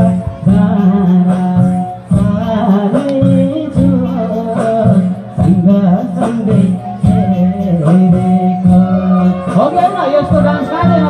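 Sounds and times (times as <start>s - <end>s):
instrumental accompaniment: 0.0s - 11.0s
man singing into a microphone: 0.0s - 11.0s.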